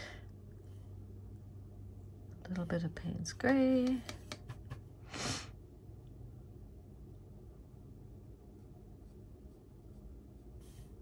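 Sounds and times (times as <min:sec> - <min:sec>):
paintbrush clicking in palette: 0:03.8 - 0:04.7.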